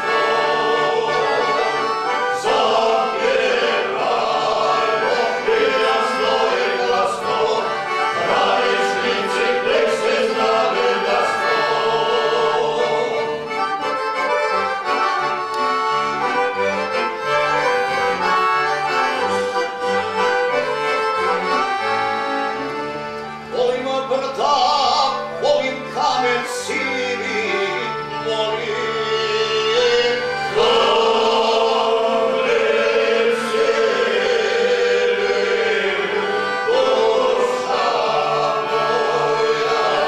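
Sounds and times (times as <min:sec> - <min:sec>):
men's group singing folk song: 0:00.0 - 0:13.8, 0:23.5 - 0:40.0
piano accordion: 0:00.0 - 0:40.0.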